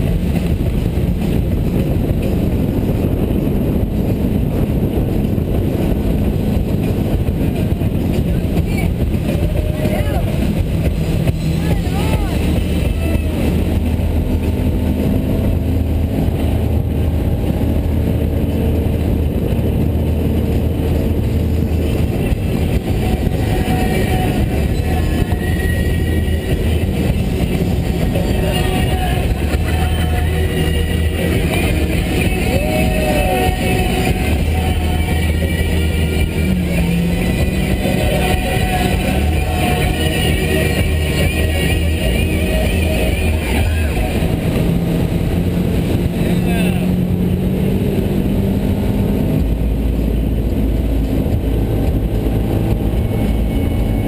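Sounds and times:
motorboat engine running: 0:00.0 - 0:54.0.

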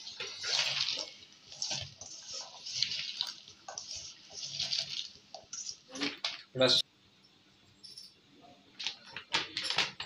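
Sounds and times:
hand mixing wet vegetables in bowl: 0:00.0 - 0:06.8.

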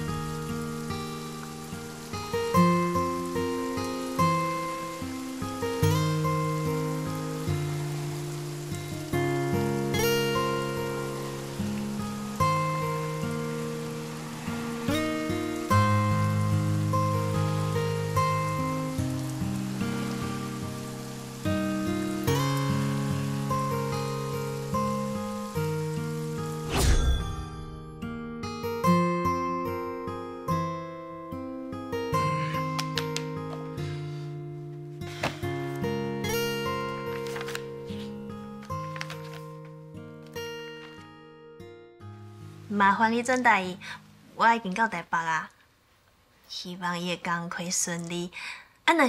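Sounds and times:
rain hissing: 0:00.0 - 0:29.9, 0:31.9 - 0:39.7, 0:42.2 - 0:45.0
plucked string music: 0:00.0 - 0:43.7.

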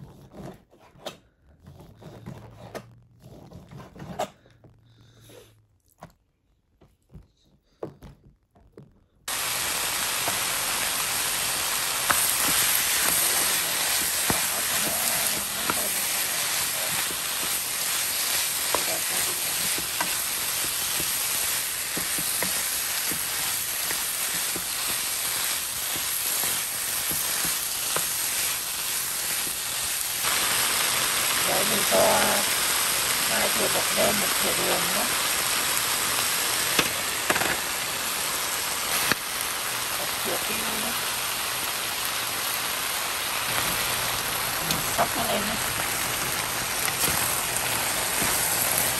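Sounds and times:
wooden spatula scraping: 0:00.0 - 0:04.5, 0:10.2 - 0:30.3, 0:44.6 - 0:48.9
meat sizzling in a pan: 0:09.3 - 0:48.9.

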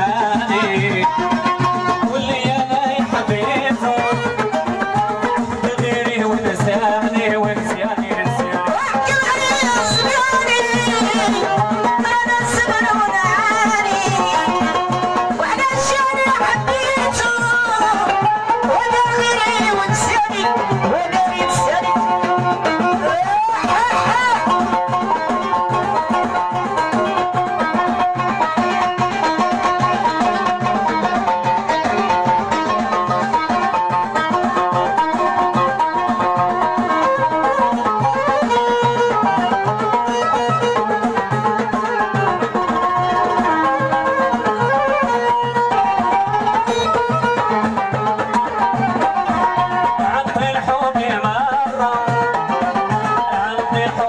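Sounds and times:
hand drum rhythm: 0:00.0 - 0:54.0
violin sliding melody: 0:00.0 - 0:54.0.

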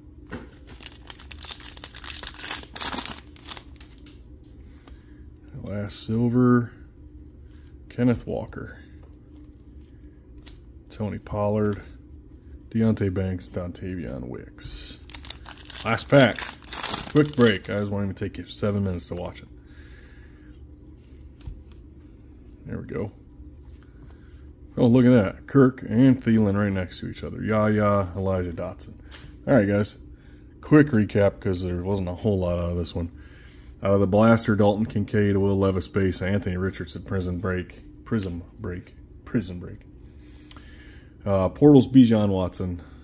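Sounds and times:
foil wrapper tearing and crinkling: 0:00.6 - 0:04.1, 0:15.0 - 0:17.9.

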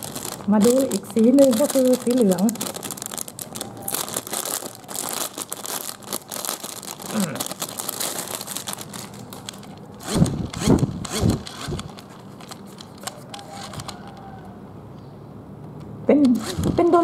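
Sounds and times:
plastic bag crinkling: 0:00.0 - 0:14.4
toy fan whirring: 0:09.4 - 0:14.5, 0:16.2 - 0:17.0.

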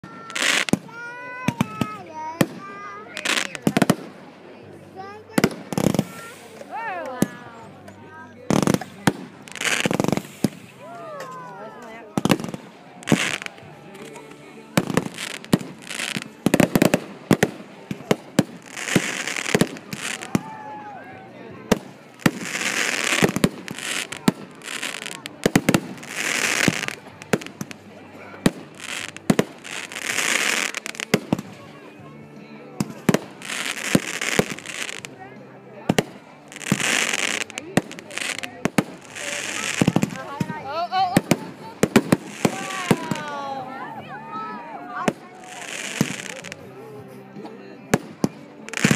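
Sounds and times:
fireworks bangs: 0:00.0 - 0:04.2, 0:05.3 - 0:07.4, 0:08.5 - 0:10.8, 0:12.2 - 0:20.5, 0:21.7 - 0:27.8, 0:35.9 - 0:43.5, 0:45.0 - 0:46.6
fireworks crackling: 0:00.0 - 0:20.8, 0:21.6 - 0:32.0, 0:32.8 - 0:35.3, 0:35.9 - 0:46.8, 0:47.9 - 0:48.9.

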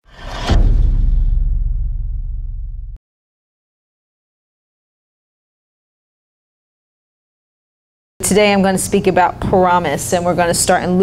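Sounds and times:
deep rumbling boom: 0:00.0 - 0:03.0.

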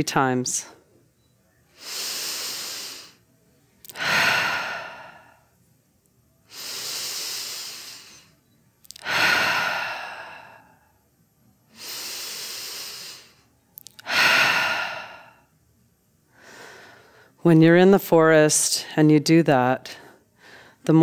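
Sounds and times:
woman breathing deeply: 0:01.7 - 0:03.2, 0:03.8 - 0:05.6, 0:06.5 - 0:11.0, 0:11.7 - 0:15.5, 0:16.3 - 0:17.4, 0:19.9 - 0:20.9.

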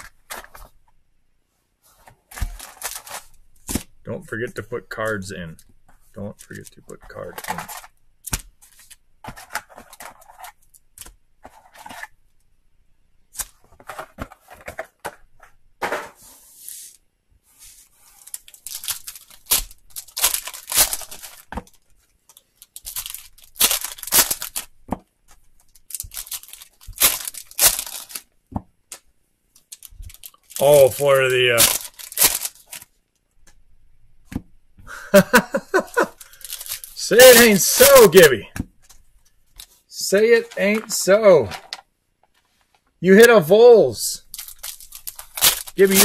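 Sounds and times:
foil packs tearing and crinkling: 0:02.4 - 0:03.4, 0:06.5 - 0:10.2, 0:18.2 - 0:21.8, 0:22.6 - 0:24.7, 0:25.7 - 0:28.3, 0:29.6 - 0:32.9, 0:35.7 - 0:38.4, 0:44.3 - 0:46.0.

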